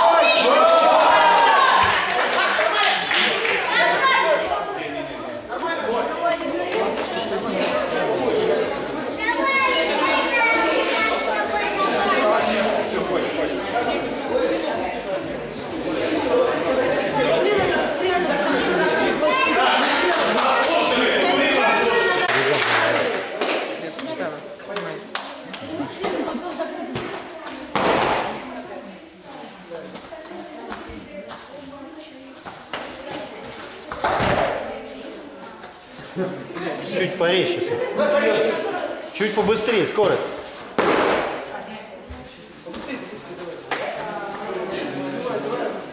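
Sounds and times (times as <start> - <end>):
chatter of many voices: 0.0 - 45.9.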